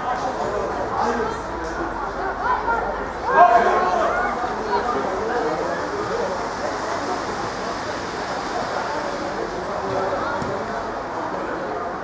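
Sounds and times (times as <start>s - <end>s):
indistinct voices: 0.0s - 12.0s
steady background noise: 0.0s - 12.0s.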